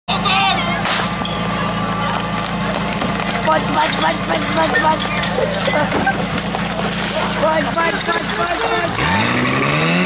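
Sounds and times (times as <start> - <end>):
pump engine running: 0.4 - 10.0
sharp crack: 0.8 - 1.2.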